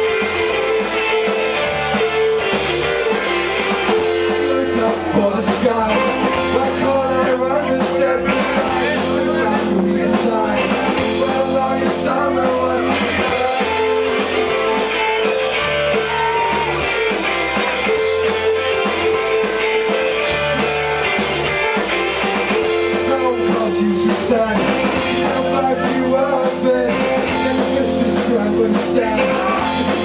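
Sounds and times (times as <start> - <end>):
bass guitar: 0.0 - 30.0
drums with cymbals: 0.0 - 30.0
electric guitar long notes: 0.0 - 30.0.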